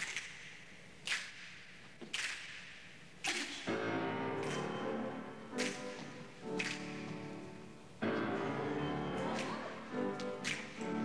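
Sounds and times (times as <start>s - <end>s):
sharp cracks in echoing hall: 0.0s - 11.0s.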